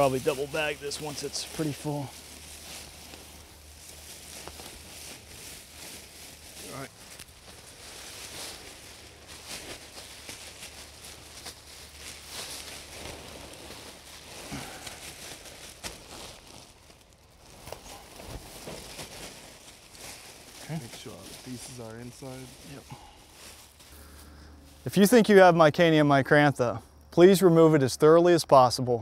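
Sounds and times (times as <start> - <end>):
plastic garbage bag crinkling: 0.0 - 25.2
leaves rustling against plastic: 0.0 - 26.0.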